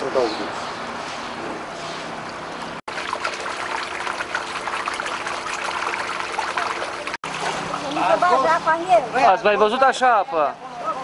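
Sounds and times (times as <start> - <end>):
water trickling and pouring: 2.9 - 8.9.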